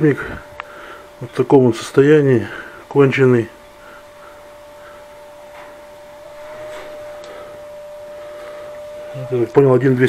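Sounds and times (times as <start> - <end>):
steady whine: 0.0 - 10.0.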